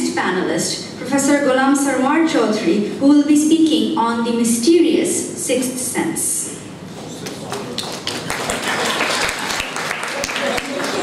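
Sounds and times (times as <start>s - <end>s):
audience applauding: 7.3s - 11.0s.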